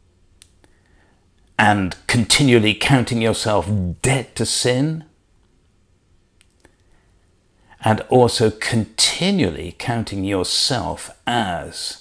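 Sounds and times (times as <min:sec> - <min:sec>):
man speaking: 0:01.6 - 0:05.1.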